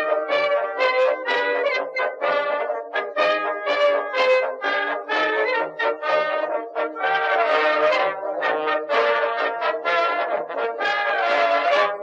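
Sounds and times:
brass instruments playing: 0:00.0 - 0:12.0.

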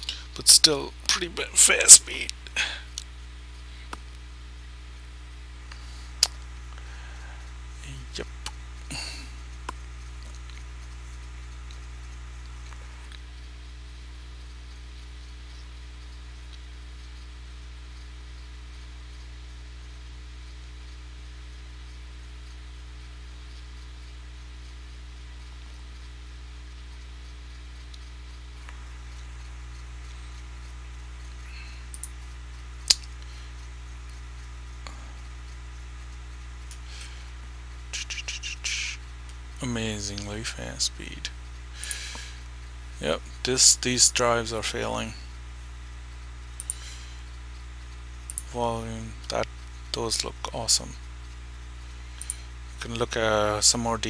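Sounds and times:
low room hum: 0:00.0 - 0:54.0
computer mouse clicks: 0:31.9 - 0:32.3, 0:46.6 - 0:46.8, 0:48.3 - 0:48.5, 0:52.1 - 0:52.4
sharp click: 0:46.6 - 0:46.8, 0:48.3 - 0:48.5.

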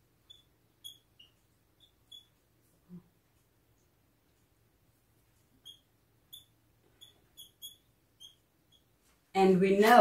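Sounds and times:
marker squeaking on whiteboard: 0:00.1 - 0:03.2, 0:05.2 - 0:09.1.

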